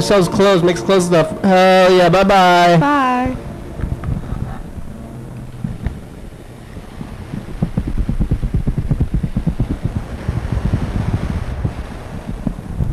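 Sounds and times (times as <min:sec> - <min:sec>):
wind buffeting microphone: 0:00.0 - 0:12.9.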